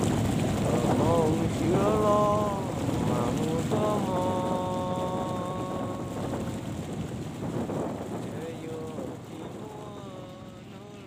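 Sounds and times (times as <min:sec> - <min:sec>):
boat engine running: 0:00.0 - 0:11.0
water rushing: 0:00.0 - 0:11.0
wind buffeting microphone: 0:00.0 - 0:11.0.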